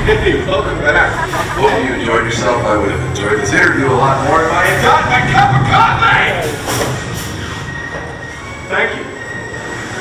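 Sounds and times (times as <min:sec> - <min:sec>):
mechanical rumble: 0:00.0 - 0:10.0.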